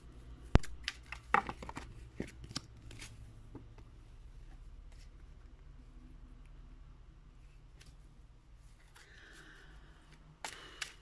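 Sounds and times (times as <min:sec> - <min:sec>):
cards being shuffled: 0:00.6 - 0:03.2, 0:10.1 - 0:11.0.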